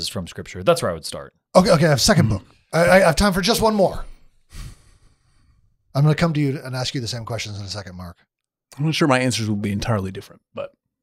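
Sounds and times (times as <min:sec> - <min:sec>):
man talking: 0:00.0 - 0:04.2, 0:05.9 - 0:10.8
man breathing close to microphone: 0:04.2 - 0:05.9.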